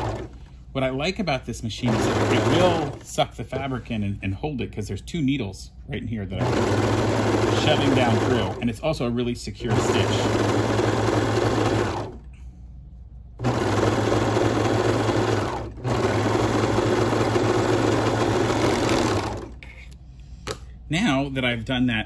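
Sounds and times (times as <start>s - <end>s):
serger machine stitching: 0.0s - 0.5s, 1.8s - 3.9s, 6.4s - 8.8s, 9.6s - 12.3s, 13.4s - 19.6s.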